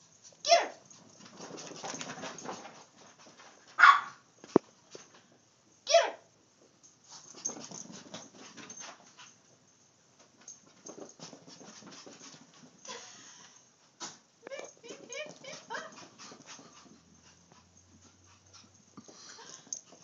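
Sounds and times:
dog barking: 3.8s - 4.2s.

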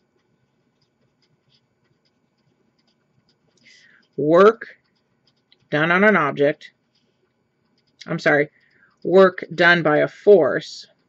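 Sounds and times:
marker scratching on paper: 0.2s - 5.8s.

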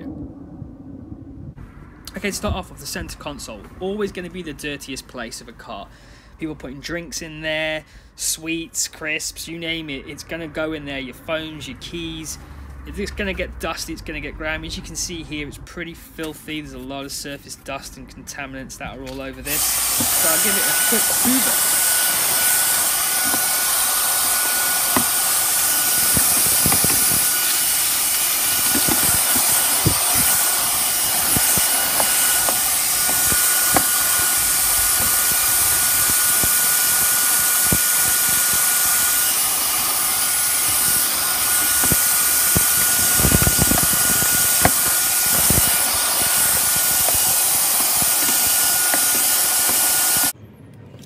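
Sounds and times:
handheld vacuum cleaner whining: 19.5s - 50.4s.

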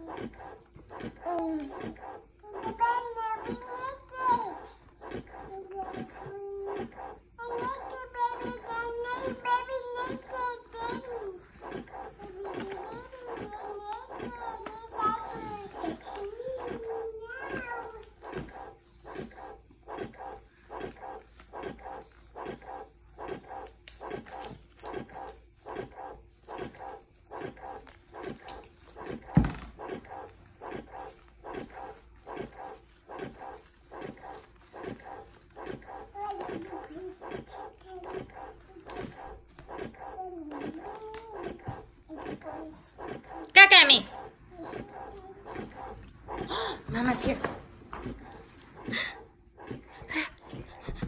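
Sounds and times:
child's voice: 0.0s - 0.6s, 1.2s - 18.8s, 35.9s - 39.4s, 40.0s - 46.0s
electric breast pump running: 0.0s - 51.0s.

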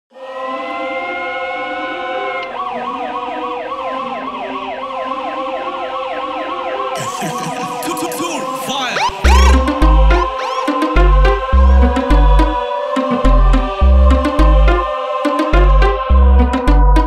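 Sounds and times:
siren-like synth wailing: 0.1s - 15.8s.

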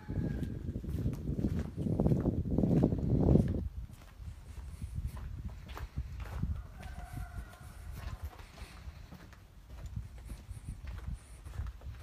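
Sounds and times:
wind rumble on microphone: 0.0s - 12.0s
footsteps on street: 0.1s - 12.0s.

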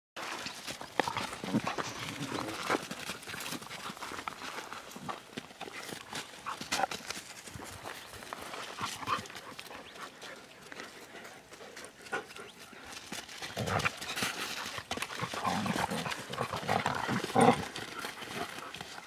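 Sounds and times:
paws scuffling on dirt: 0.2s - 19.0s
dogs growling and yipping: 14.9s - 18.6s.

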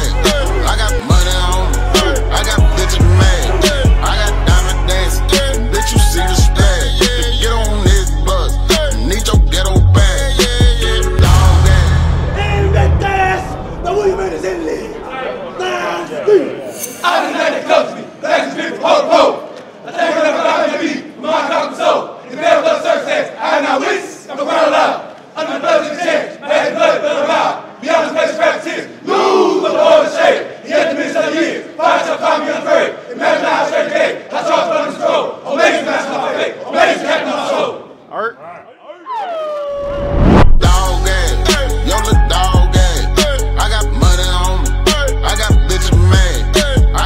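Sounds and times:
young men chanting and shouting: 0.0s - 39.1s, 40.6s - 47.0s.

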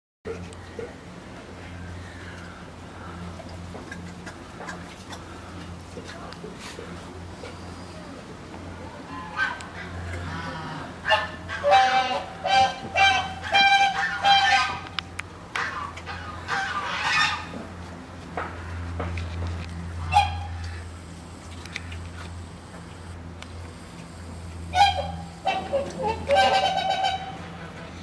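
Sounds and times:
honk-like animal calls: 10.3s - 14.9s, 20.0s - 20.9s, 24.7s - 27.8s.

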